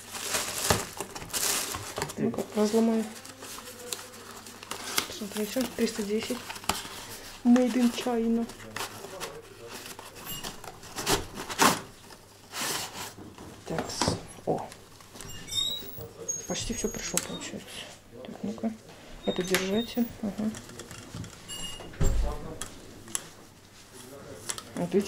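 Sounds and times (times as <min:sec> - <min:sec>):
cardboard scraping and rustling: 0:00.1 - 0:14.3.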